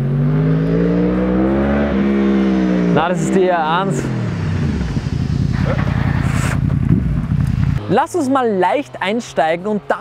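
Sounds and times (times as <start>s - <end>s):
motorcycle engine: 0.0s - 10.0s.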